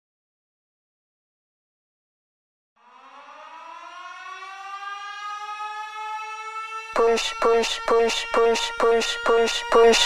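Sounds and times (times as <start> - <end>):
rising siren-like tone: 2.8 - 10.0
pulsing dance beat: 7.0 - 10.0.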